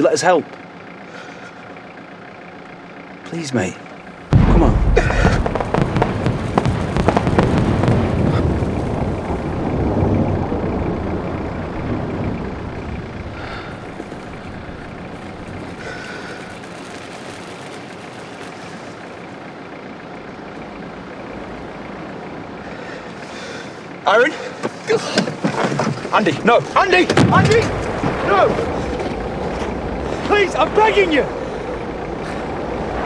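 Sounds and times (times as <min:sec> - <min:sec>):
low rumble: 0:04.1 - 0:23.9, 0:26.8 - 0:33.0
fireworks booming and crackling: 0:04.3 - 0:19.4, 0:26.8 - 0:31.1.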